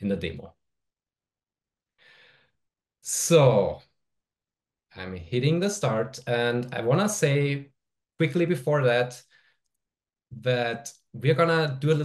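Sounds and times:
faint intake of breath: 0:02.0 - 0:02.6.

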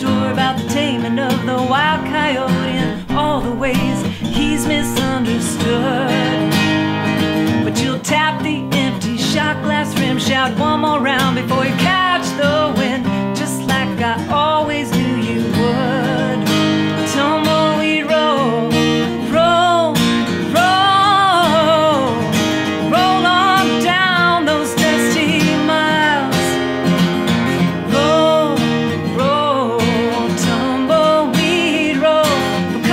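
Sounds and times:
acoustic guitar: 0:00.0 - 0:32.9
woman singing country song: 0:00.0 - 0:32.9.

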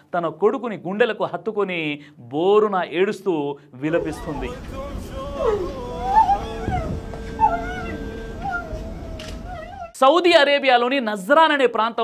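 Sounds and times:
long steady tone: 0:03.9 - 0:09.9
noisy background: 0:03.9 - 0:09.9
person wailing: 0:04.0 - 0:10.0.

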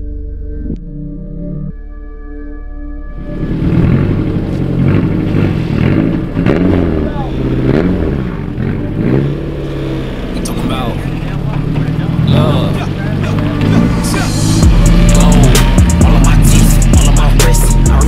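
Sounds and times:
car engine revving: 0:03.1 - 0:18.0.

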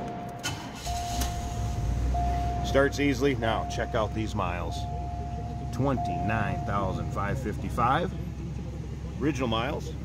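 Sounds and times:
car warning tone: 0:00.0 - 0:09.6
car engine cranking and running: 0:00.0 - 0:10.0.

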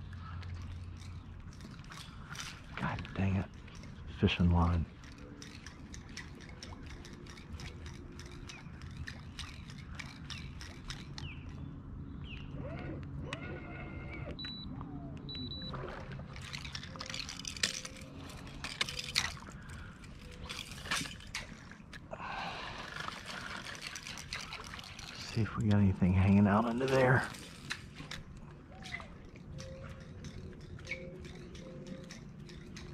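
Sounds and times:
water lapping against a hull: 0:00.0 - 0:32.9.

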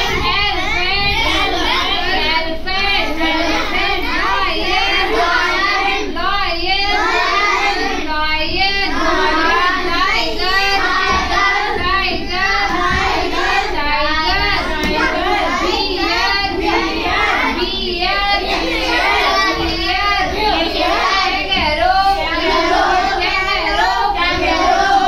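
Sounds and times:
children singing in chorus: 0:00.0 - 0:25.0.

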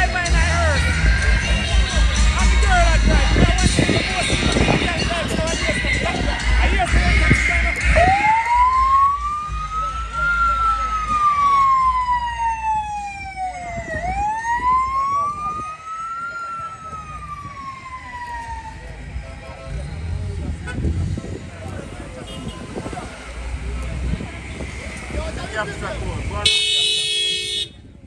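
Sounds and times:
police siren wailing: 0:02.4 - 0:19.9.

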